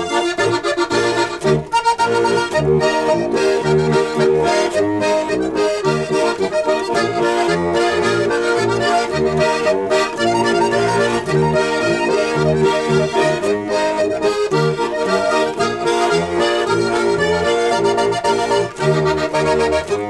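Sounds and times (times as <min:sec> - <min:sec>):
accordions playing polka: 0:00.0 - 0:20.0.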